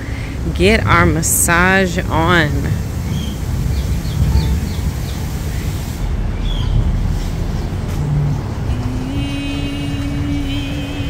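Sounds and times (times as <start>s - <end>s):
wind rumbling on microphone: 0.2s - 11.0s
high bird chirps: 3.1s - 6.8s.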